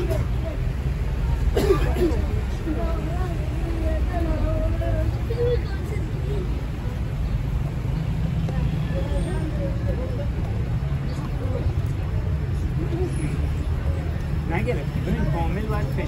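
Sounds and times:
faint voices of passers-by: 0.0 - 16.0
road traffic rumble: 0.0 - 16.0.

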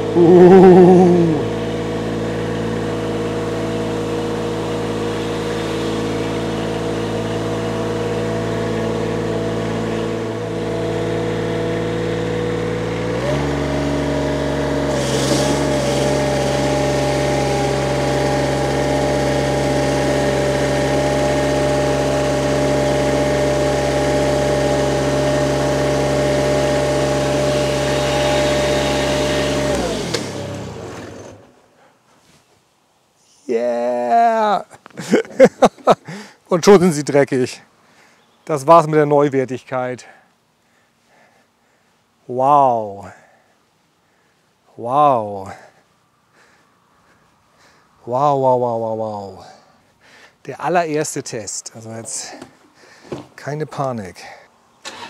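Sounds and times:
mower diesel engine running: 0.0 - 31.6.

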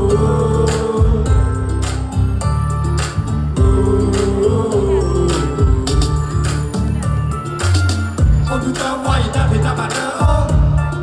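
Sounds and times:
person singing into microphone: 0.0 - 1.8, 3.6 - 7.0, 8.4 - 11.0
backing track with bass and beat: 0.0 - 11.0.

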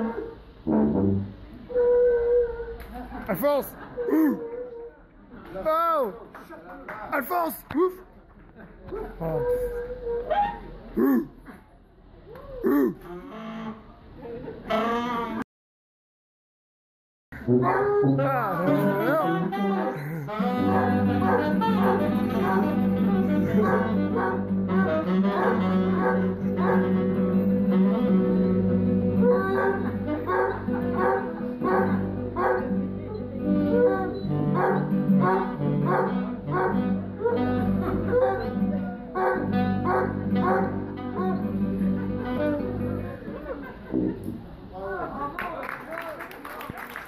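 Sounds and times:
sousaphone bass line: 0.6 - 1.5
dog howling: 1.7 - 2.8, 9.2 - 11.2, 17.6 - 20.0, 20.6 - 26.9, 29.2 - 32.6, 33.7 - 41.5
saxophone: 12.8 - 13.9, 14.7 - 15.4, 17.4 - 44.4
acoustic guitar: 17.4 - 44.4.

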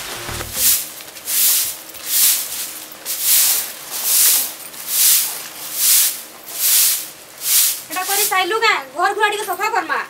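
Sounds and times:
broom sweeping earth floor: 0.0 - 8.6.

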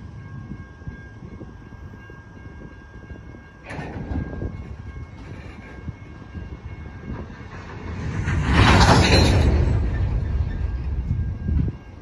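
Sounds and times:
freight train rumble: 0.0 - 12.0.

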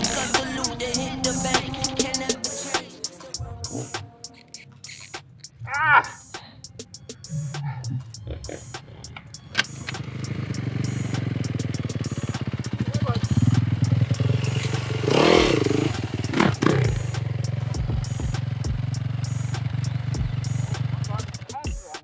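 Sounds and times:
dirt bike engine idling: 0.0 - 3.7, 6.1 - 21.7.

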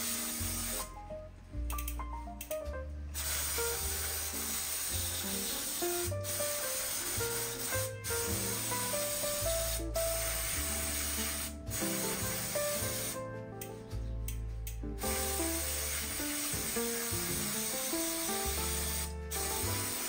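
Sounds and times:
aerosol spray can hissing: 0.0 - 0.9, 3.2 - 13.2, 15.0 - 20.0
background music: 0.0 - 20.0.

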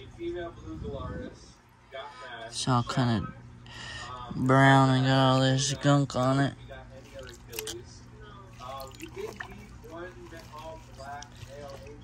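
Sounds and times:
steady low hum: 0.0 - 12.0
faint background voices: 3.2 - 12.0
water sloshing and dripping: 7.0 - 7.8, 8.5 - 12.0.

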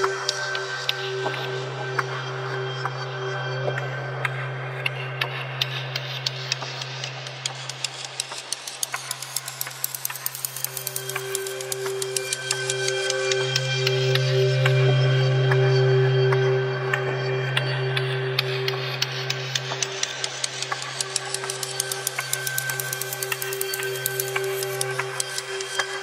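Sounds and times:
rapid sharp clicks: 20.1 - 26.0.

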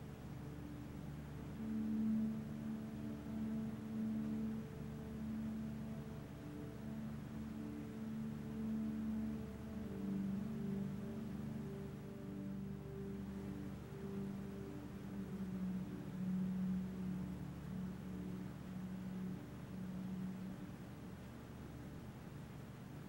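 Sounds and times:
soft ambient music: 0.0 - 23.0.

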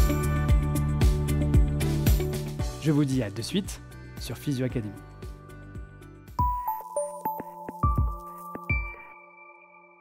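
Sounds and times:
chime-like jingle notes: 6.4 - 10.0.

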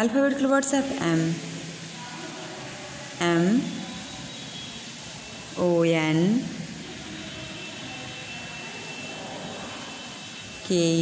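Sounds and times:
steady hiss: 0.0 - 11.0
faint high whine: 0.3 - 11.0.

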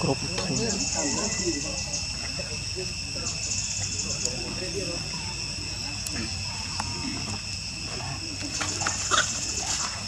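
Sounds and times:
high insect drone: 0.0 - 10.0.

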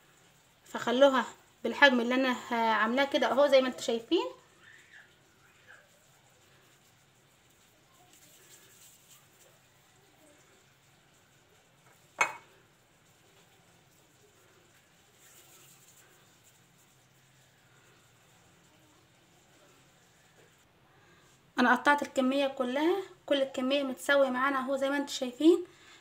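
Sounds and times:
kitchen utensil clink: 12.2 - 12.5.

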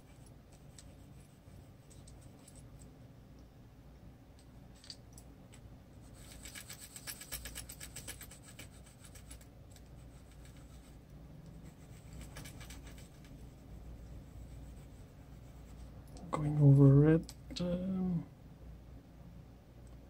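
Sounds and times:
colored pencil scratching on paper: 0.0 - 2.5, 6.0 - 15.9.

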